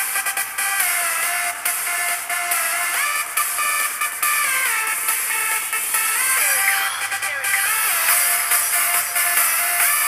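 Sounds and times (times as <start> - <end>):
tinny electronic dance music: 0.0 - 10.0.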